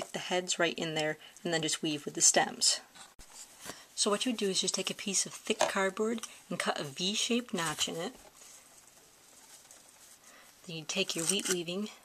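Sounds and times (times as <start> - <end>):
person speaking: 0.0 - 3.0, 3.9 - 8.2, 10.6 - 12.0.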